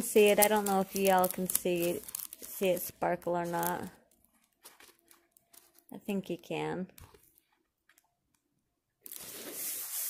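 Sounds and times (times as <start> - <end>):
plastic film crinkling: 0.0 - 6.0, 9.0 - 10.0.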